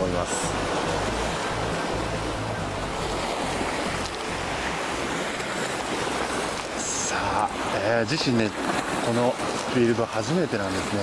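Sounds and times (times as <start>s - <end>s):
surf washing over rocks: 0.0s - 11.0s.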